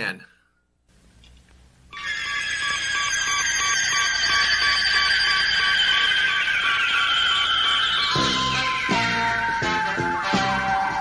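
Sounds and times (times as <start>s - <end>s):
high sustained electronic tones: 1.9s - 11.0s
rapidly pulsing beep: 2.0s - 11.0s.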